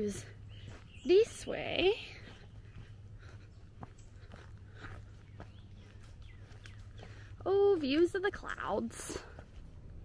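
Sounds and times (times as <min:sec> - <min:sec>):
faint bird chirps: 0:00.0 - 0:07.4
footsteps on rock: 0:00.6 - 0:09.7.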